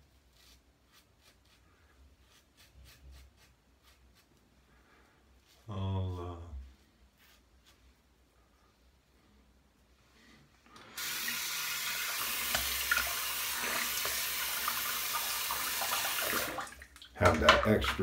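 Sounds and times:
tap running into sink: 12.2 - 14.2, 17.2 - 18.0.

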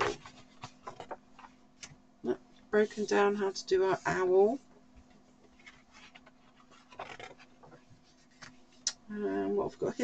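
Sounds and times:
book pages rustling: 0.0 - 2.0, 5.0 - 8.8.

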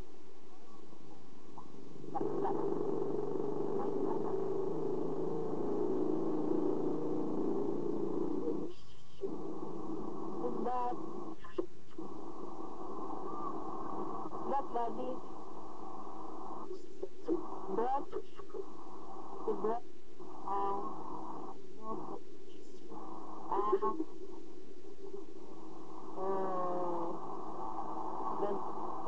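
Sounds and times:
muffled background voices: 1.6 - 6.5, 25.0 - 29.0.

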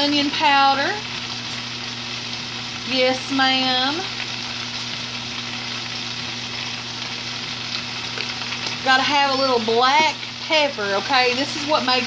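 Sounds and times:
cabbage sizzling in a skillet: 0.0 - 12.0.

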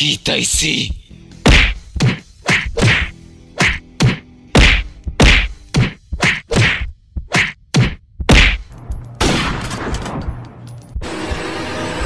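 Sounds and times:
cartoon whack strikes with swish: 1.4 - 8.7.

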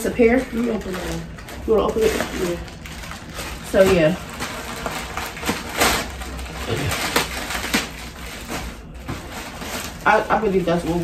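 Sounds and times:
plastic bag crinkling and rustling: 0.0 - 11.0.

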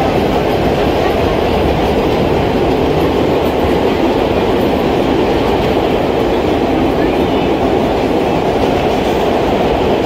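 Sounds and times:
subway train wheels rumbling on rail: 0.0 - 10.0.

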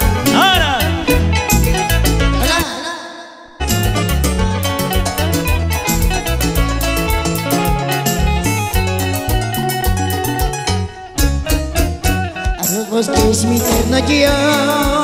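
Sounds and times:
strong bass line: 0.0 - 2.7, 3.6 - 15.0
live band music: 0.0 - 3.0, 3.6 - 15.0.

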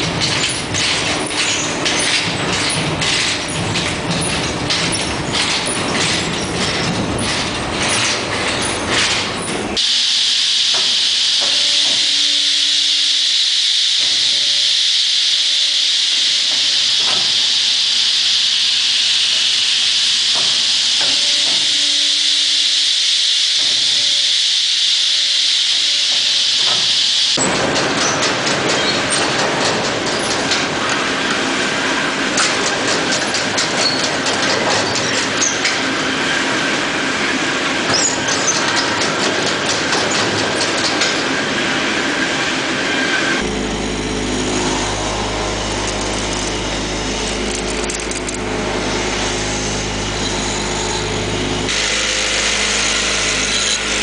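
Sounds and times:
conveyors rattling and clattering: 0.0 - 9.8, 26.6 - 54.0
low machine tone: 0.0 - 54.0.

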